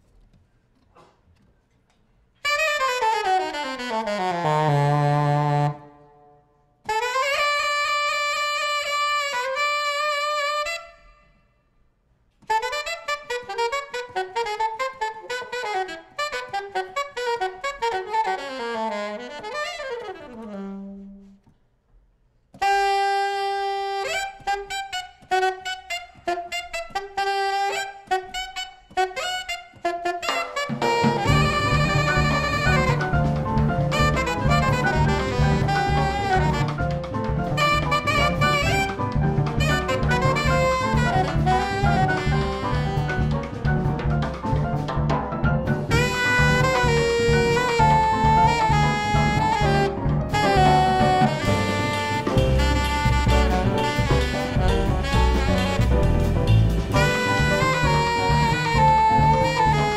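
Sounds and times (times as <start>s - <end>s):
jazz alto saxophone playing: 2.4s - 6.2s, 6.8s - 11.3s, 12.4s - 21.5s, 22.6s - 45.1s, 45.7s - 59.9s.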